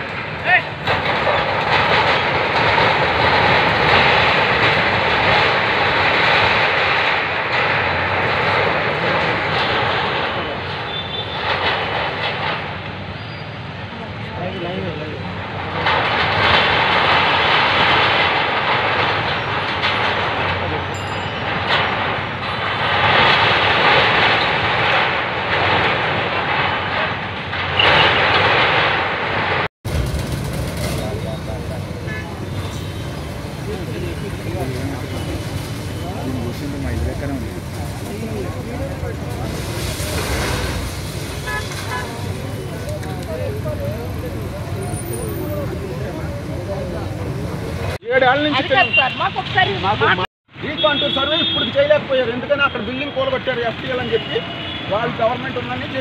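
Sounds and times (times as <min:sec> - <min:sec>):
excavators tearing concrete and metal: 0:00.0 - 0:50.2.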